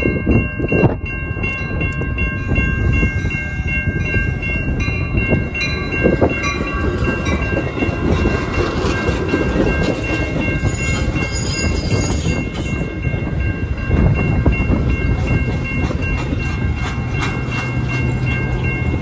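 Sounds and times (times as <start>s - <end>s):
crossing bell ringing: 0.0s - 19.0s
train cars rumbling past: 0.0s - 19.0s
locomotive engine hum: 0.1s - 19.0s.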